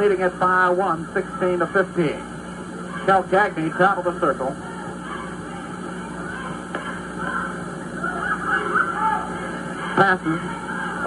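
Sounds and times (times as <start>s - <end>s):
gymnasium crowd noise: 0.0s - 11.0s
steady low hum: 0.0s - 11.0s.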